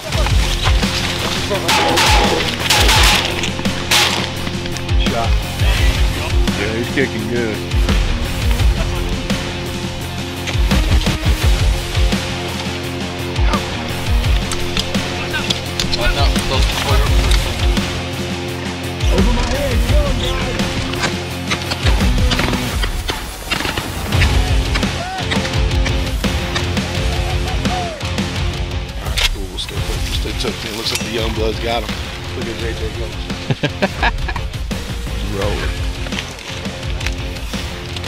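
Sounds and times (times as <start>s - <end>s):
loud background music: 0.0s - 38.0s.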